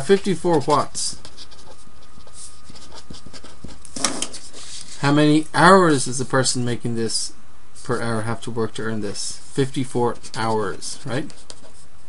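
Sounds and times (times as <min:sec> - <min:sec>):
steady low hum: 0:00.0 - 0:12.0
pen scratching while writing: 0:00.5 - 0:04.6, 0:10.1 - 0:11.8.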